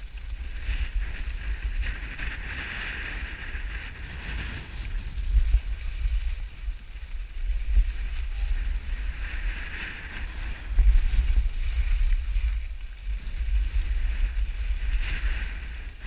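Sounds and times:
skis sliding on snow: 0.0s - 16.0s
wind buffeting microphone: 0.0s - 16.0s.

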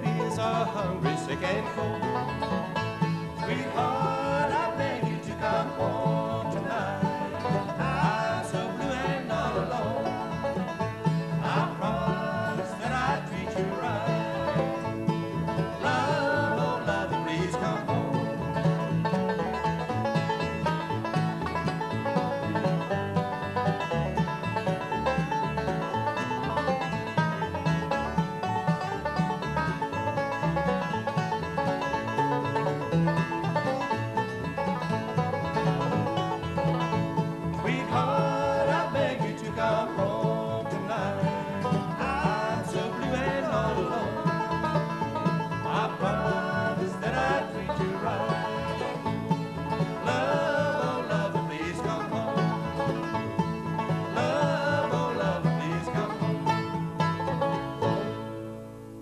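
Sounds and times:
acoustic guitar: 0.0s - 59.0s
banjo: 0.0s - 59.0s
mandolin: 0.0s - 59.0s.

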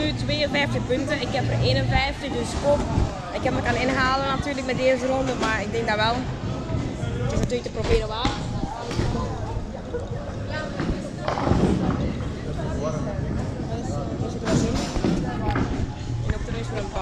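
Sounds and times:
people talking: 0.0s - 6.2s, 7.2s - 17.0s.

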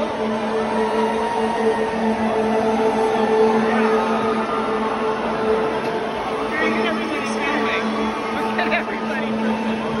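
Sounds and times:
crowd talking and calling out: 0.0s - 10.0s
steady droning tone: 0.0s - 10.0s.

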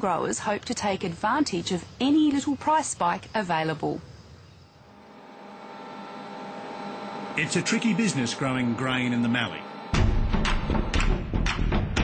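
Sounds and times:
steady whine: 0.0s - 11.2s.

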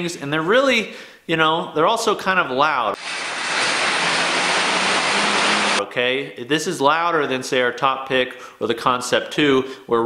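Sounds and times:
air bike fan rushing air: 3.0s - 5.8s.

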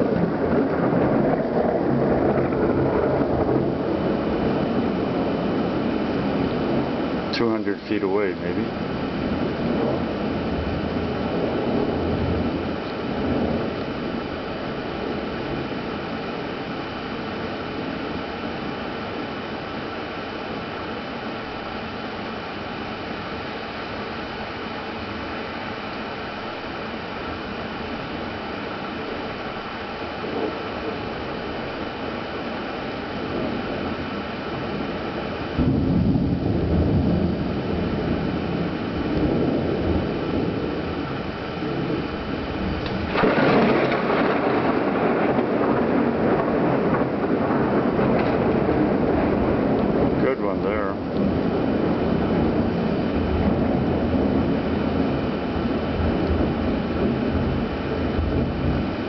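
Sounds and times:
sharp thunder clap: 0.0s - 5.8s, 35.6s - 59.0s
deep rumble of thunder: 0.0s - 19.4s, 27.3s - 59.0s
steady hiss: 5.7s - 10.5s.

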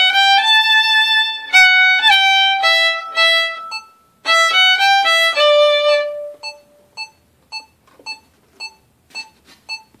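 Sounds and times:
electronic metronome beeps: 3.0s - 4.1s, 5.8s - 10.0s.

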